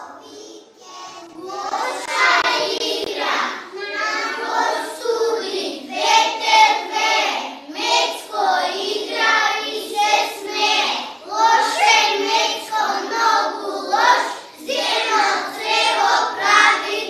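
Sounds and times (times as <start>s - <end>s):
young children singing: 0.0s - 17.0s.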